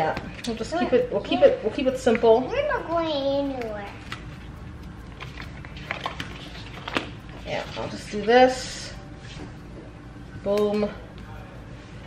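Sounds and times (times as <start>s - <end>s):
paper rustling: 5.1s - 8.0s.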